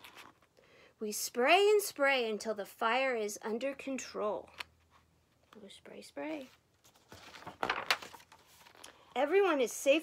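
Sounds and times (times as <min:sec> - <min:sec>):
book page turning: 0:00.0 - 0:00.5, 0:06.4 - 0:09.0.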